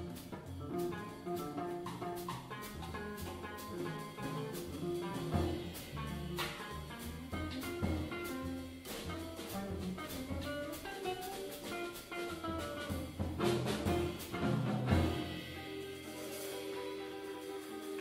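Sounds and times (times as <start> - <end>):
plucked double bass: 0.0 - 15.6
drum kit with cymbals: 0.0 - 18.0
electric guitar melody: 0.0 - 18.0.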